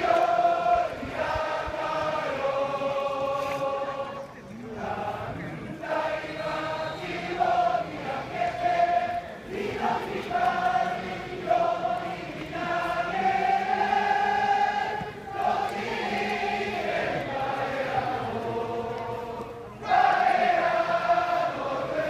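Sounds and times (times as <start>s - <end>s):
crowd singing in unison: 0.0s - 22.0s.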